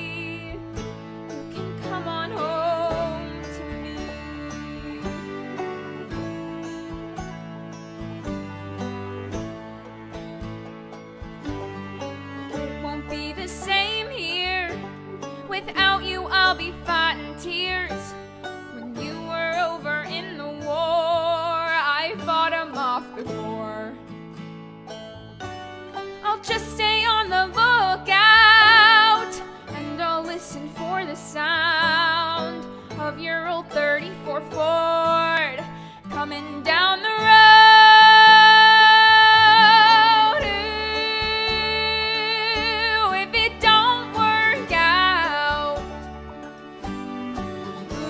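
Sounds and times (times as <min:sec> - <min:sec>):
woman singing country ballad: 0:00.0 - 0:07.2, 0:11.7 - 0:24.2, 0:26.0 - 0:46.2, 0:47.1 - 0:48.0
instrumental accompaniment: 0:00.0 - 0:48.0.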